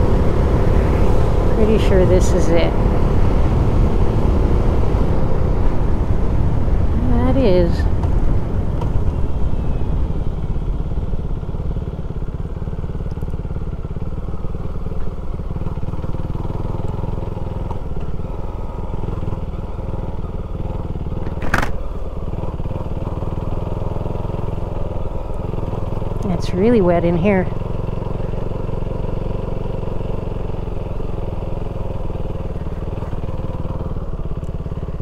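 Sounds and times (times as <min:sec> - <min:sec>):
motorcycle engine running: 0:00.0 - 0:35.0.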